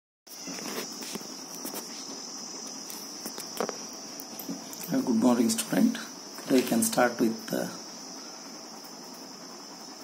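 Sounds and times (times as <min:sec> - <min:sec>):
high-pitched cricket trill: 0:00.3 - 0:10.0.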